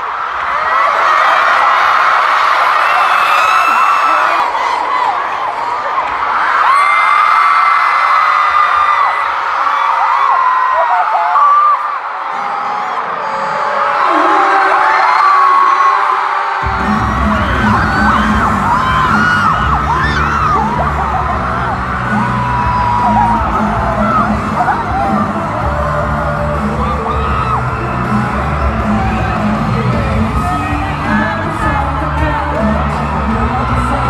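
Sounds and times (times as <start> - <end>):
crowd screaming and whooping: 0.0 - 34.0
pop music with heavy bass: 16.6 - 34.0.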